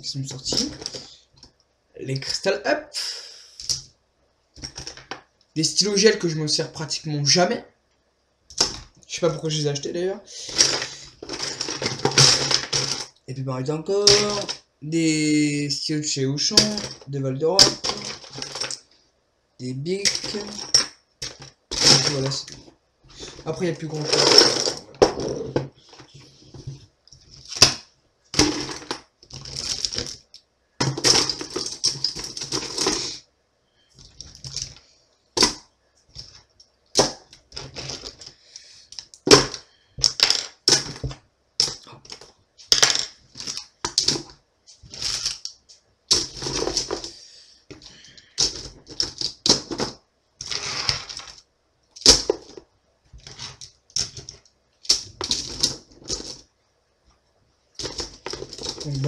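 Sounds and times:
plastic pens clattering: 10.4s - 13.2s, 14.0s - 14.6s, 16.5s - 18.9s, 19.9s - 27.8s, 28.4s - 33.2s, 33.9s - 34.8s, 37.0s - 56.5s, 57.8s - 59.0s.

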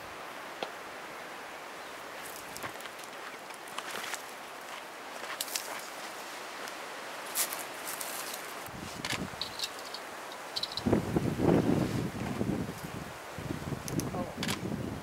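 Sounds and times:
leaves rustling in wind: 0.0s - 15.0s
wind buffeting microphone: 8.6s - 9.7s, 10.6s - 15.0s.

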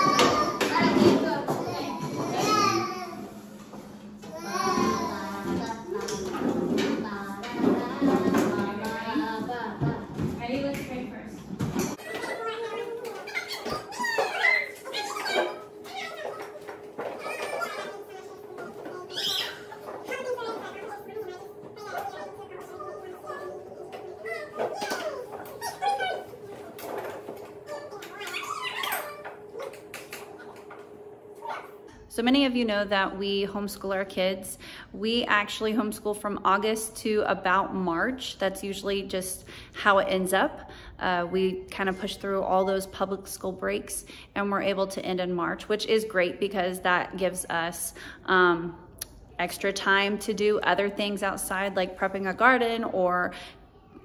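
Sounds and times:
young children chattering: 11.9s - 30.6s.

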